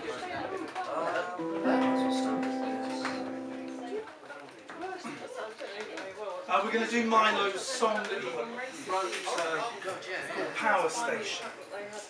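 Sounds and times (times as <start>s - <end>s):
acoustic guitar chord strummed: 1.4s - 4.0s.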